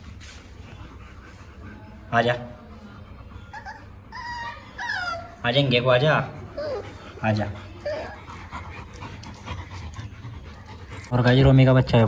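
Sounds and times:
dog panting softly: 0.0s - 12.0s.

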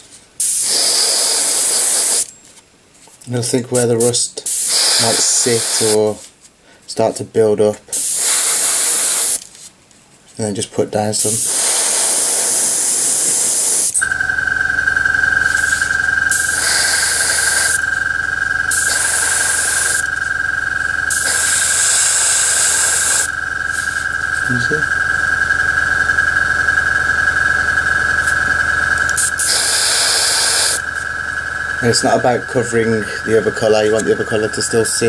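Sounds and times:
airbrush spraying paint: 0.4s - 2.3s, 4.5s - 6.1s, 7.9s - 9.6s, 11.2s - 14.1s, 15.2s - 24.8s, 27.8s - 35.0s
air compressor humming: 4.6s - 6.0s, 11.2s - 35.0s.

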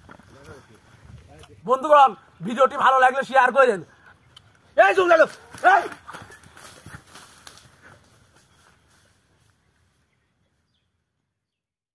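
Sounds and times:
barefoot footsteps on dirt: 0.0s - 1.4s, 4.4s - 10.8s.

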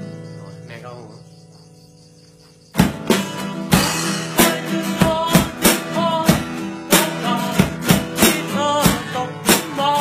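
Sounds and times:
acoustic guitar notes: 0.0s - 10.0s.

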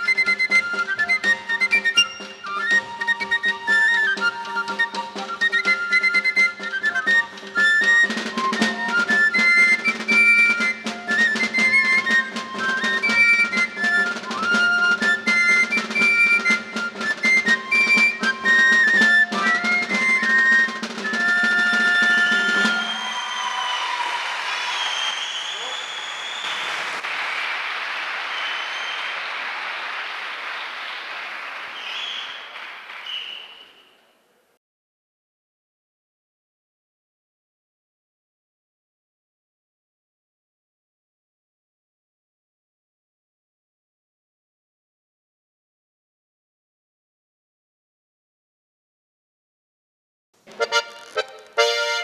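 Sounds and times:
regular drumbeat: 0.1s - 24.8s, 50.5s - 52.0s
applause: 22.6s - 33.9s.

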